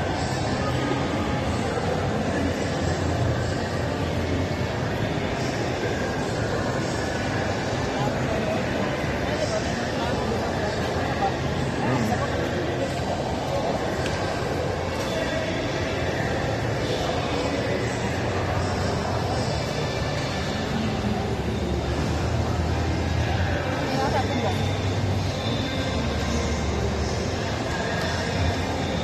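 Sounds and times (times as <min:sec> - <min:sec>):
indistinct crowd chatter: 0:00.0 - 0:29.0.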